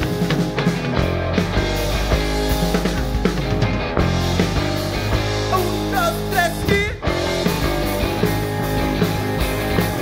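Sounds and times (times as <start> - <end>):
drum strikes: 0.0 - 10.0
electric guitar playing: 0.0 - 10.0.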